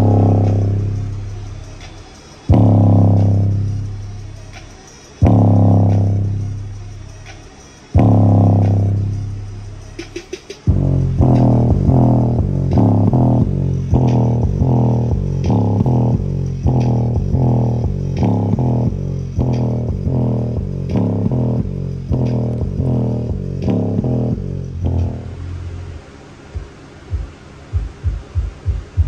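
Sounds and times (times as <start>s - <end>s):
bass-heavy music through woofer: 0.0s - 29.0s.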